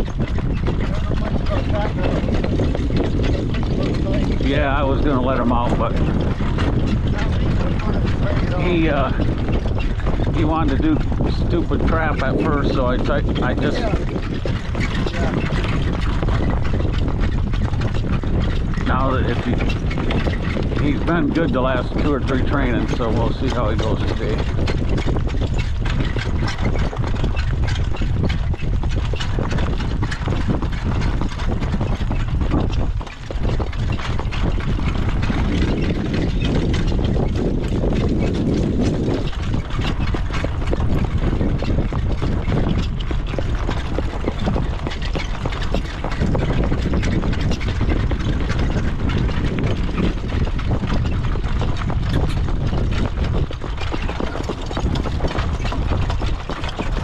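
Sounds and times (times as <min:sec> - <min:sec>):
cart rattling: 0:00.0 - 0:57.0
hoofbeats on dirt: 0:00.0 - 0:57.0
wind rumbling on microphone: 0:00.0 - 0:57.0.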